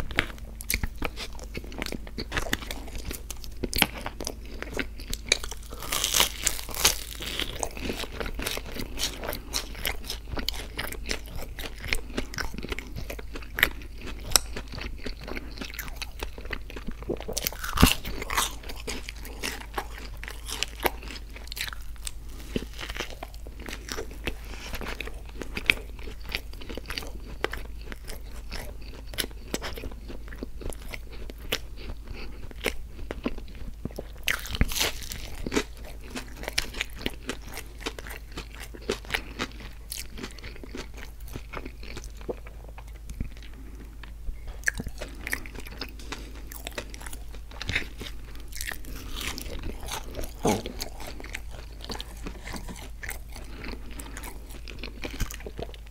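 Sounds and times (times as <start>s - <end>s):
crunchy chewing: 0.0s - 55.9s.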